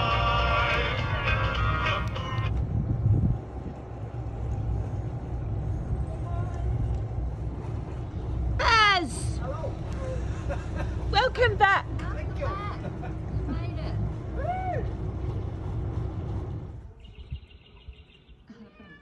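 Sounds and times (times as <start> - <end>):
boat engines idling: 0.0 - 2.7, 3.5 - 17.0.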